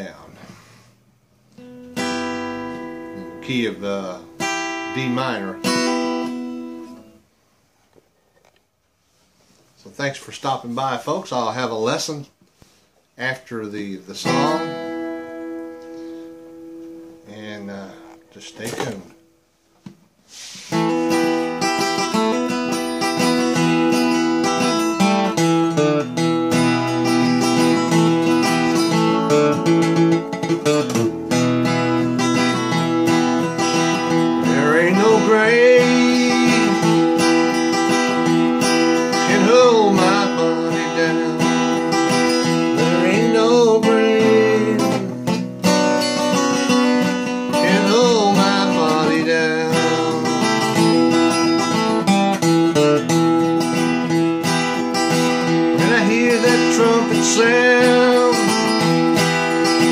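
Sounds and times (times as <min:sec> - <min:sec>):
acoustic guitar strumming chords: 0:01.4 - 0:07.3, 0:14.1 - 0:19.5, 0:20.3 - 0:59.9.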